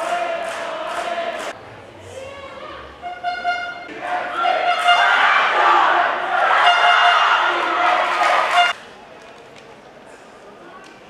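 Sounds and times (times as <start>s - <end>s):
team shouting rallying cry: 0.0s - 1.6s, 3.9s - 8.8s.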